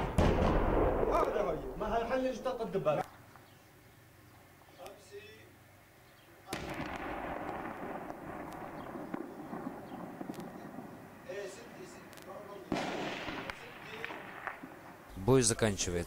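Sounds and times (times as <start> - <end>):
heavy explosions with rumble: 0.0 - 1.9, 6.5 - 11.8, 12.7 - 15.0.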